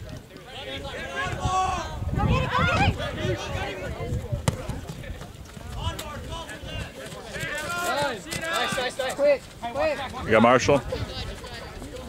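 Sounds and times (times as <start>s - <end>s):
players and spectators calling out: 0.2s - 4.9s, 5.7s - 12.0s.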